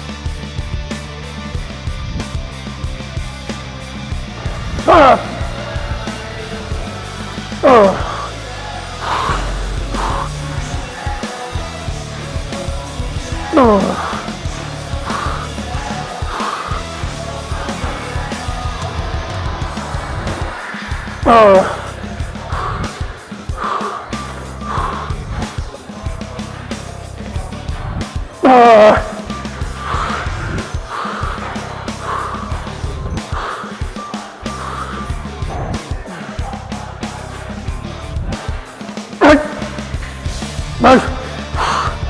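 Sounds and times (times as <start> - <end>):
background music: 0.0 - 42.0
man breathing heavily: 1.5 - 42.0
person shouting with effort: 4.8 - 5.4, 7.6 - 8.3, 13.5 - 14.0, 21.2 - 21.9, 28.4 - 29.2, 39.2 - 39.7, 40.8 - 41.3.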